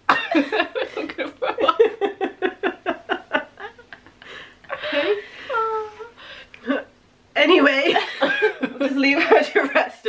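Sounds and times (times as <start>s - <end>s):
women talking and chuckling: 0.2s - 6.0s, 7.6s - 10.0s.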